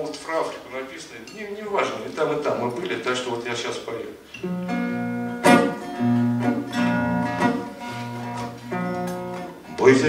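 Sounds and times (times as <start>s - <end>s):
acoustic guitar strummed chords: 4.4s - 10.0s.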